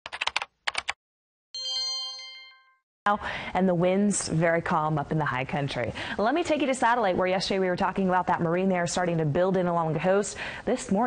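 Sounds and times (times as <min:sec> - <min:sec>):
sharp keyboard clicks: 0:00.1 - 0:01.0
bright ringing chime: 0:01.6 - 0:02.8.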